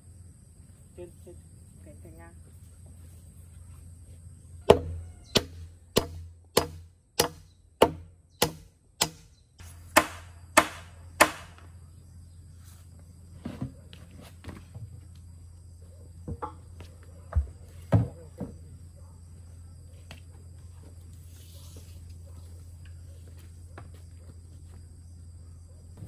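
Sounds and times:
hammer hitting nail into wood: 4.7 - 9.3, 9.9 - 11.6.

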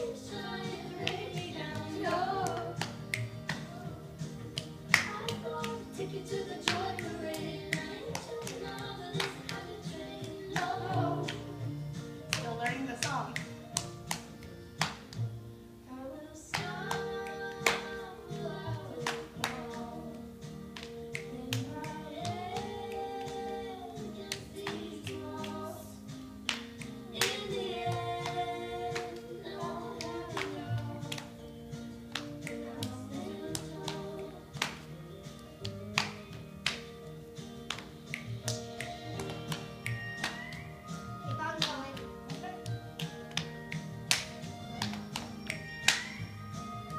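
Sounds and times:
children's song from tv: 0.0 - 46.9
hand claps and palm slaps: 0.7 - 15.4, 16.5 - 18.0, 18.6 - 19.9, 20.5 - 23.6, 24.2 - 46.9.

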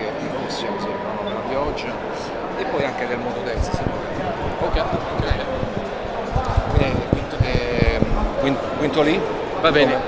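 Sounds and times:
faint crowd voices: 0.0 - 10.0
microphone handling thuds: 3.5 - 8.4.

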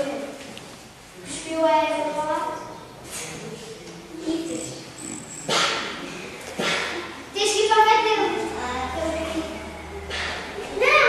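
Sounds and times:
child shouting: 10.8 - 11.0.

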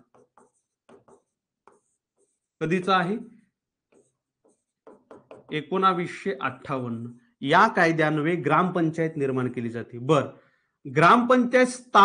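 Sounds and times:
marker writing on whiteboard: 0.0 - 7.4.

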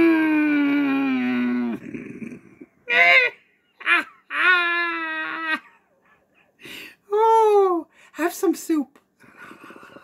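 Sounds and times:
woman moaning: 0.0 - 5.7.

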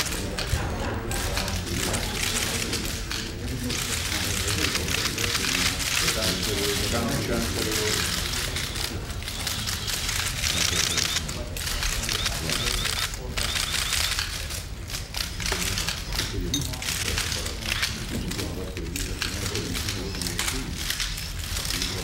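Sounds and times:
murmur of voices: 0.0 - 22.0
camera shutters clicking rapidly: 7.9 - 16.3.

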